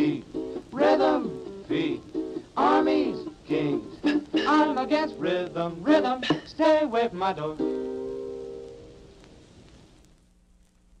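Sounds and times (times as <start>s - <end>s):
held chord on old record: 0.0s - 10.2s
record surface hiss: 0.0s - 11.0s.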